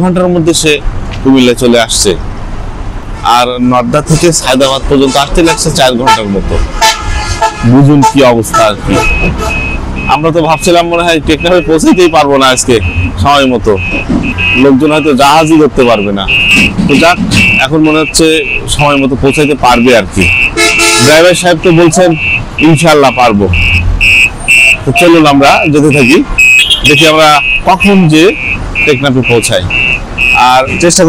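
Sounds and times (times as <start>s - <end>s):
voices calling out: 7.6s - 31.0s
reversing alarm beeping: 8.9s - 31.0s.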